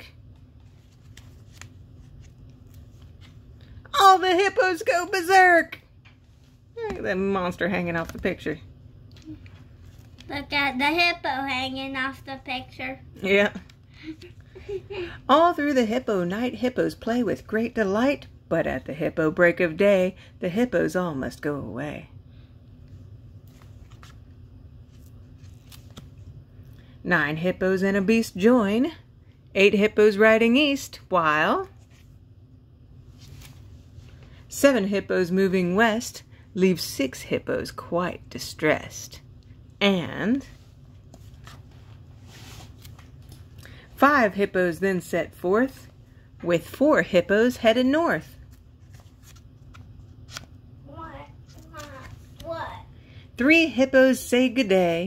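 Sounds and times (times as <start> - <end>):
low room hum: 0.0 - 55.0
cardboard pages turning: 0.2 - 3.8, 9.4 - 10.5, 23.4 - 26.3, 33.1 - 34.3, 41.0 - 43.5, 48.4 - 50.6, 51.4 - 52.5.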